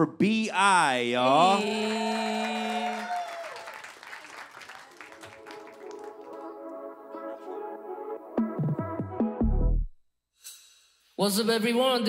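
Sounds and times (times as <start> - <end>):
man shouting: 0.8 - 3.6
audience applauding: 1.3 - 7.6
music with sustained tones: 5.1 - 9.2.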